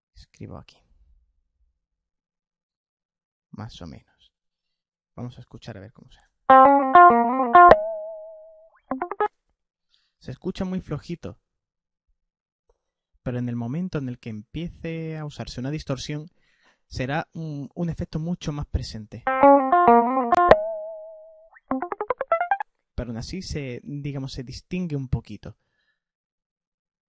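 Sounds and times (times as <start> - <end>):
electric guitar note ringing: 6.5 - 9.3, 19.3 - 22.6.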